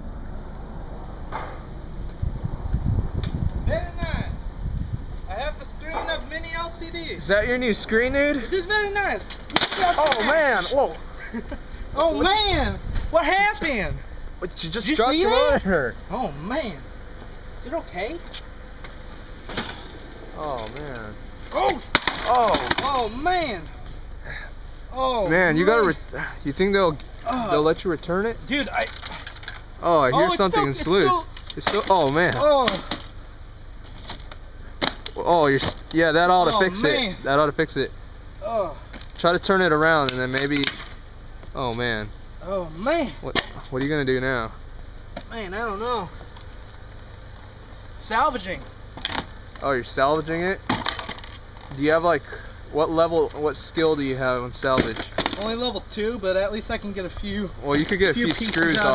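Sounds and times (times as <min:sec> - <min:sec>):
low rumble: 0:00.0 - 0:07.6
low steady background noise: 0:00.0 - 0:58.9
wind hiss on microphone: 0:02.1 - 0:05.3.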